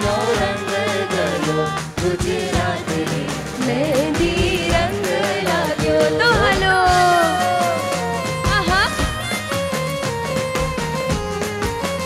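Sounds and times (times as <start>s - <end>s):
person singing ornamented vocals: 0.0s - 2.2s
steady drum beat: 0.0s - 12.0s.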